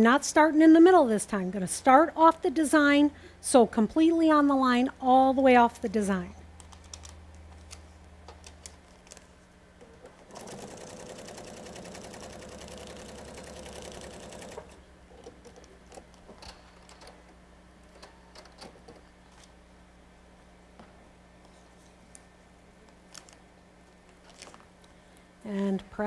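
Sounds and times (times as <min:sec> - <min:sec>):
sewing machine stitching: 0:10.3 - 0:14.8.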